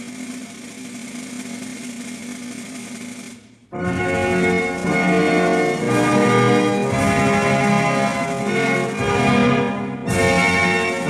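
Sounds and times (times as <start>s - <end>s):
snare drum roll: 0.0s - 11.0s.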